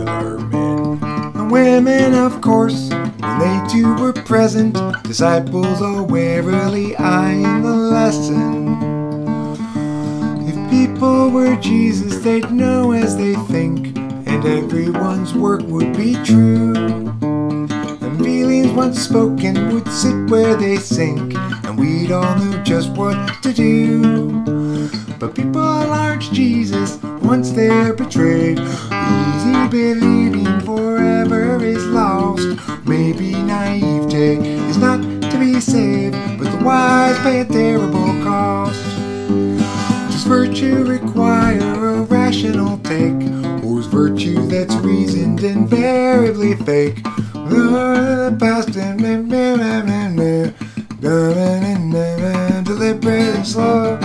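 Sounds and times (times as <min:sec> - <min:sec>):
man singing: 0:00.0 - 0:08.8, 0:09.6 - 0:17.2, 0:17.9 - 0:54.0
acoustic guitar strumming: 0:00.0 - 0:54.0.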